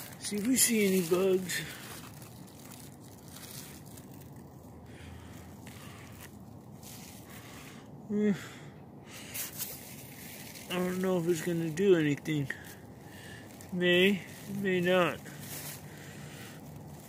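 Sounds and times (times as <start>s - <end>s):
leaves rustling by hand: 0.0s - 7.8s, 9.2s - 17.0s
faint outdoor hiss: 0.0s - 17.0s.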